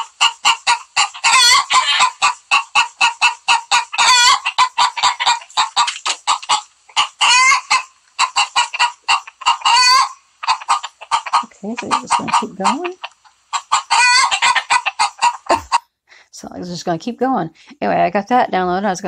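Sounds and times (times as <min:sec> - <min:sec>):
hen clucking rapidly: 0:00.0 - 0:15.8
hen drawn-out squawk: 0:00.3 - 0:13.0, 0:13.6 - 0:15.5.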